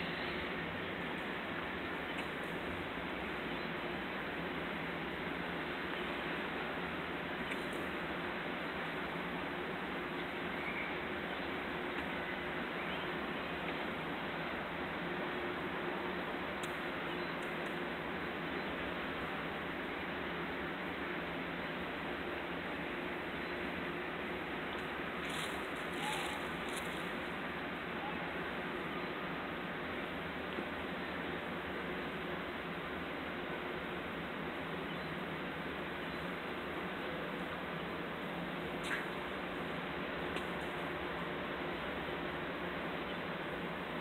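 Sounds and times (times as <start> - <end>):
outdoor hiss and hum: 0.0 - 44.0
faint brief clicks: 38.8 - 39.1.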